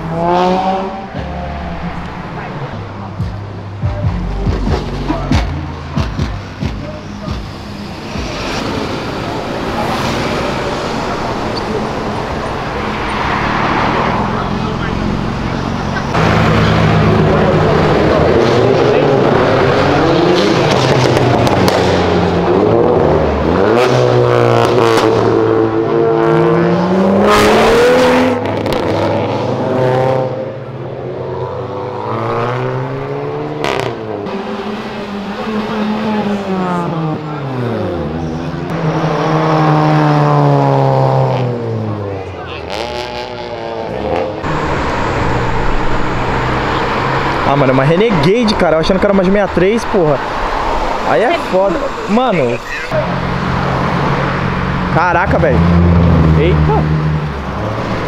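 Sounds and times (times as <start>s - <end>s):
cars accelerating hard: 0.0s - 58.0s.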